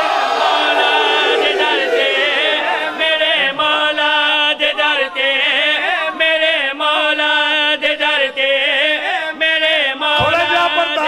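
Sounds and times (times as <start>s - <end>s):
men chanting through loudspeakers: 0.0s - 11.0s.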